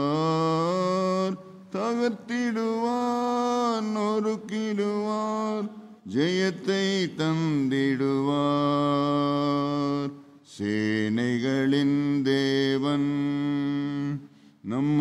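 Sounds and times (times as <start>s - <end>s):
man singing unaccompanied: 0.0s - 15.0s.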